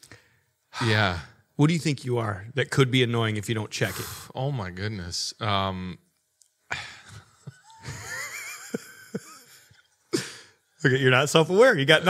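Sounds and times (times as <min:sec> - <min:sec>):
men laughing wheezily: 0:06.7 - 0:10.6.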